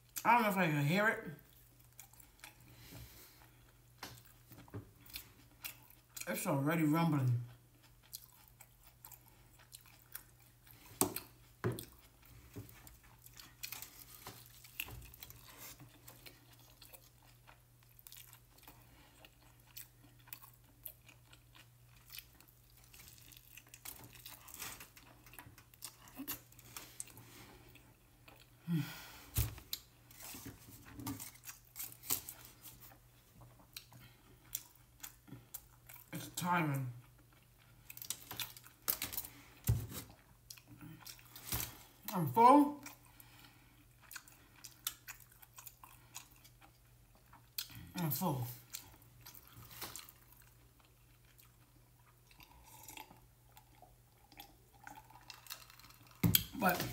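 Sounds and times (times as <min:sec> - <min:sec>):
biting and chewing food: 0:01.4 - 0:06.3, 0:07.4 - 0:36.1, 0:37.0 - 0:42.0, 0:42.8 - 0:47.9, 0:48.6 - 0:56.9
sharp crackles of food: 0:07.7 - 0:28.5, 0:29.3 - 0:33.0, 0:37.2 - 0:42.0, 0:48.6 - 0:56.9.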